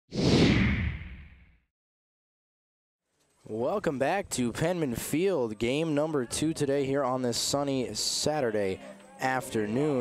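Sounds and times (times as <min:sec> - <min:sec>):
whoosh with deep rumble: 0:00.1 - 0:01.5.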